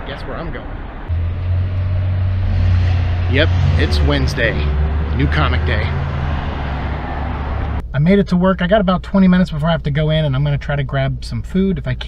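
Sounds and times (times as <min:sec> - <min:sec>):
motor vehicle running: 0:00.7 - 0:07.8.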